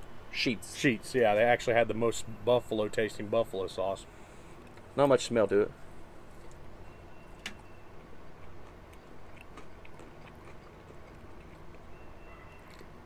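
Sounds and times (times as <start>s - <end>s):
chewing chicken wings: 8.3s - 12.0s, 12.6s - 13.0s.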